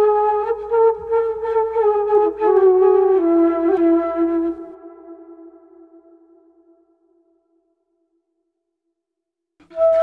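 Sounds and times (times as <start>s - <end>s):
bamboo flute note: 9.6s - 10.0s.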